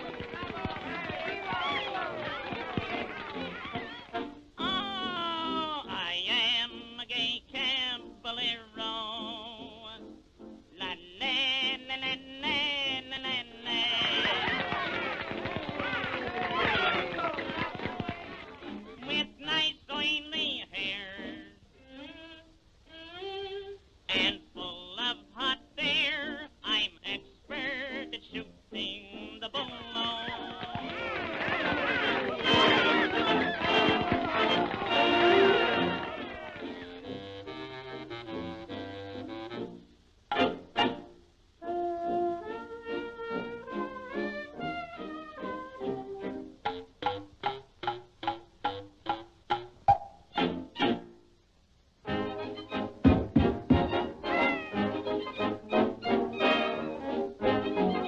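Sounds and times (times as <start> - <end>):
cartoon music: 0.8 - 5.6, 29.6 - 39.6, 41.6 - 51.1, 53.7 - 58.0
person singing with vibrato: 4.6 - 10.1, 10.8 - 14.6, 19.0 - 31.1.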